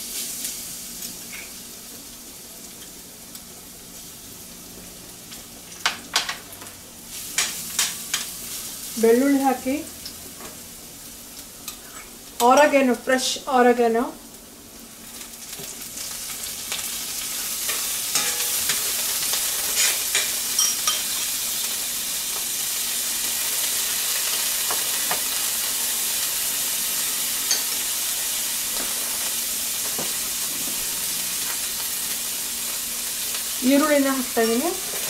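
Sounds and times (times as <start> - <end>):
garlic sizzling in hot oil: 0.0 - 35.0.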